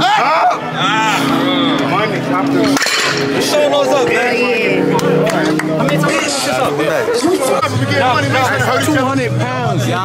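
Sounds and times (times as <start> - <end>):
loud excited voices: 0.0 - 2.6, 3.2 - 10.0
music playing: 0.0 - 10.0.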